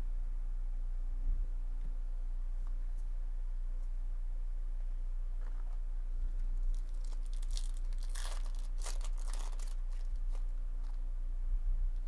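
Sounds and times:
wrapper tearing and crinkling: 0:06.6 - 0:11.0.

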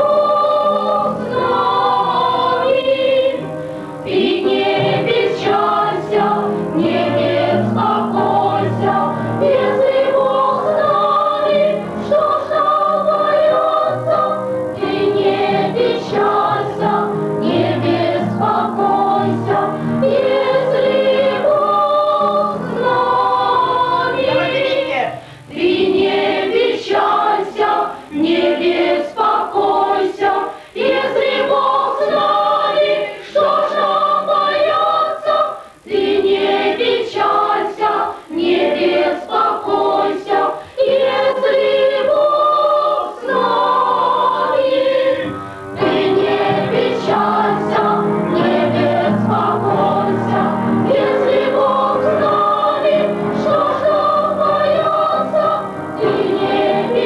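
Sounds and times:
youth choir singing: 0:00.0 - 0:57.0.

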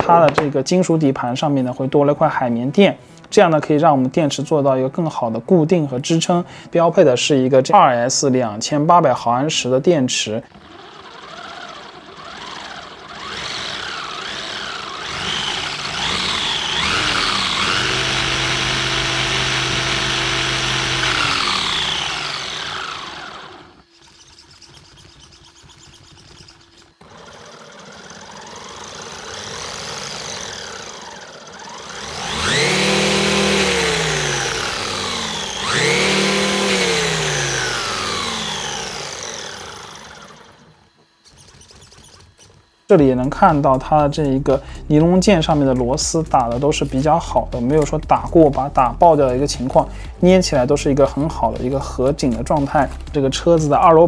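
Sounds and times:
electric motor whining: 0:09.6 - 0:54.0.

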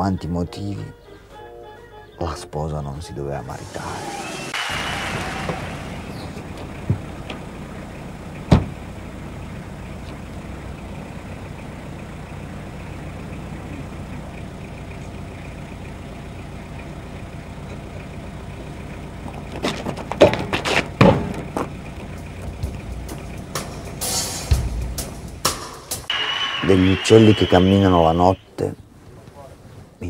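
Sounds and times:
car engine idling: 0:03.3 - 0:29.0
sharp knocks: 0:08.5 - 0:08.8.

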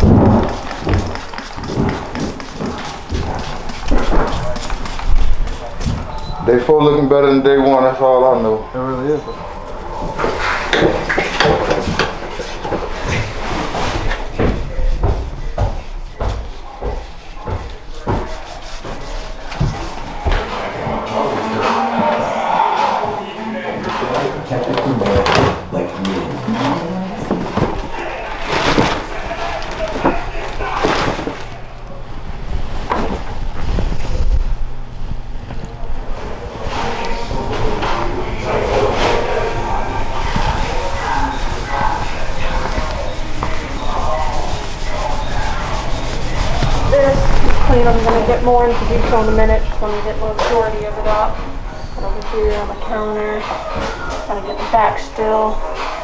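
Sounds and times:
trash being handled and swept: 0:00.0 - 0:06.3, 0:09.5 - 0:23.2, 0:26.2 - 0:31.6, 0:36.6 - 0:49.5
indistinct voices: 0:04.0 - 0:32.1, 0:35.6 - 0:56.0.

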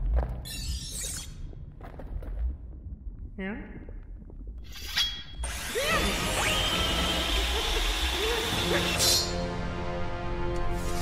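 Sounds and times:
cartoon mechanical grinding and whirring: 0:05.4 - 0:09.4.

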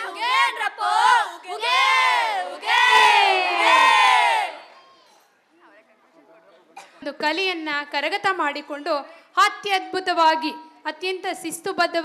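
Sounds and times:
girls singing in unison: 0:00.0 - 0:04.5.

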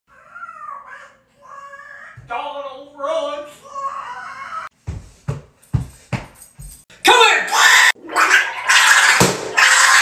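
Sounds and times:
wavering animal-like cries: 0:00.1 - 0:02.2, 0:03.6 - 0:04.7.

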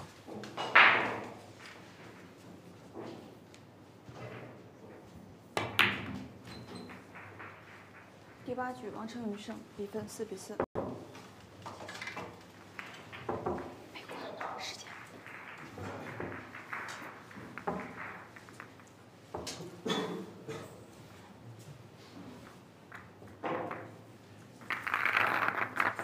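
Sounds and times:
billiard balls clacking: 0:00.1 - 0:08.5, 0:10.8 - 0:20.1, 0:22.4 - 0:26.0
balls rattling in rack: 0:05.6 - 0:08.5, 0:10.8 - 0:19.8, 0:22.9 - 0:26.0.

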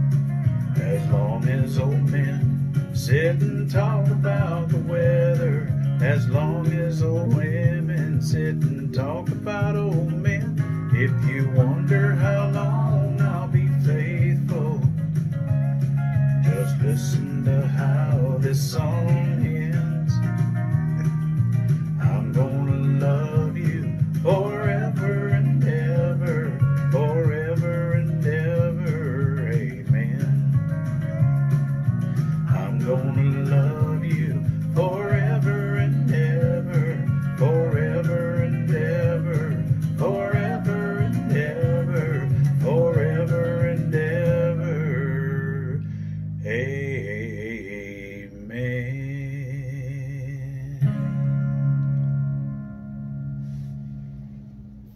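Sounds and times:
backing track with guitar and bass: 0:00.0 - 0:54.9
man singing country song: 0:00.4 - 0:15.2, 0:16.1 - 0:20.6, 0:21.8 - 0:31.2, 0:32.2 - 0:51.4.

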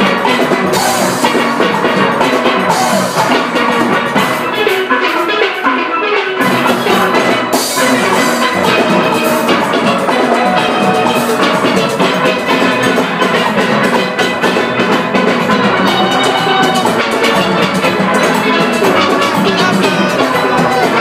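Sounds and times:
steady drum beat: 0:00.0 - 0:05.8, 0:06.4 - 0:21.0
steelpans playing: 0:00.0 - 0:21.0.

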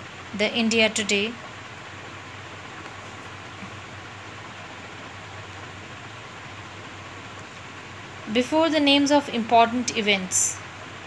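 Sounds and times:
faint low hum: 0:00.0 - 0:11.0
steady background hiss: 0:00.0 - 0:11.0.

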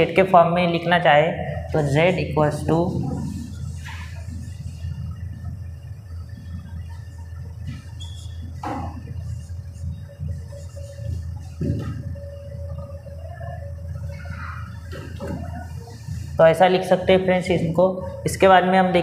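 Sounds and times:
low room hum: 0:00.0 - 0:19.0
marker squeaking on whiteboard: 0:06.4 - 0:16.2.

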